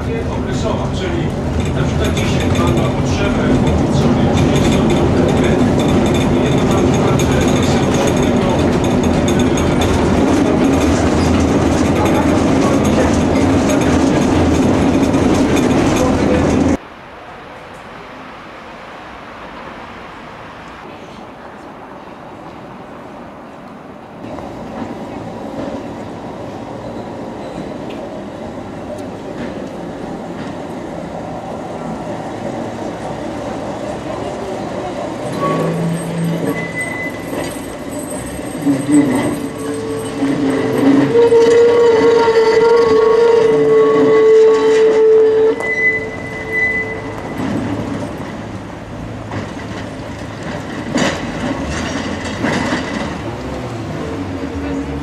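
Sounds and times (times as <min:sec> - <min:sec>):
tram rumbling past: 0:00.0 - 0:55.0.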